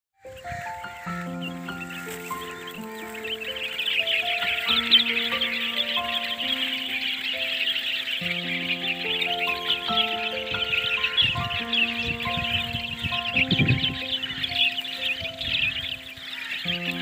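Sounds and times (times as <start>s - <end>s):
slow background music: 0.2s - 17.0s
small birds chirping: 0.2s - 17.0s.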